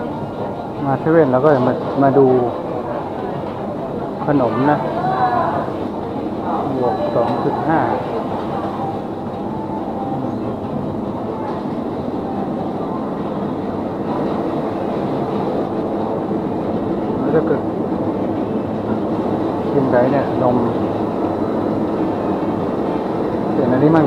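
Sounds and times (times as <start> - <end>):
rumbling store background noise: 0.0 - 24.0.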